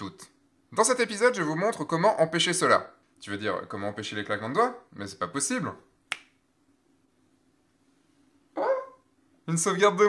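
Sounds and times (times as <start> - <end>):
finger snap: 6.1 - 6.4.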